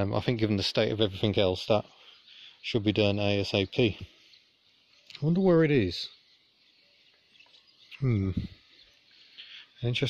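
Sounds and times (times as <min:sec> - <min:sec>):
distant bird chirps: 0:00.0 - 0:10.0
faint high hiss: 0:00.0 - 0:10.0.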